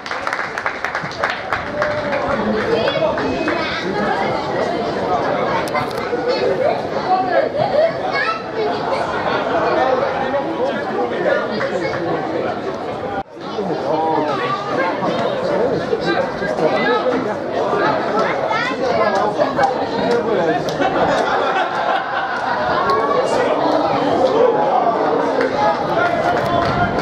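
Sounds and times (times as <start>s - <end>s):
chatter of many voices: 0.0s - 27.0s.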